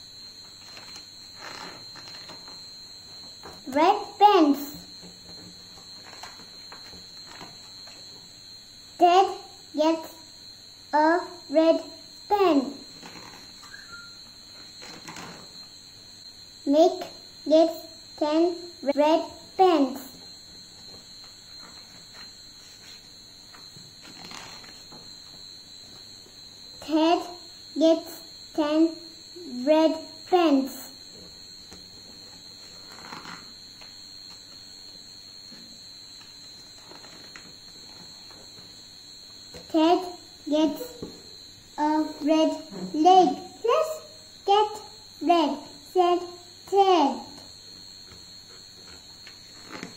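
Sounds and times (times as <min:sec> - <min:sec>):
high-pitched electronic whine: 0:00.0 - 0:49.9.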